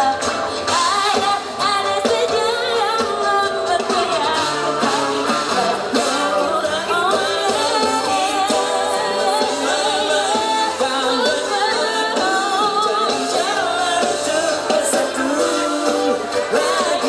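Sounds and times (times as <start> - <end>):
bass guitar: 0.0 - 17.0
drums: 0.0 - 17.0
electric guitars: 0.0 - 17.0
man and woman singing: 0.0 - 17.0.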